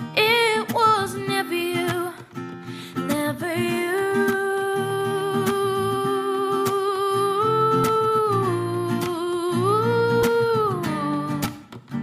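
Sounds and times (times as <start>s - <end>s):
strummed acoustic guitar: 0.0s - 12.0s
woman singing long notes: 3.1s - 11.4s.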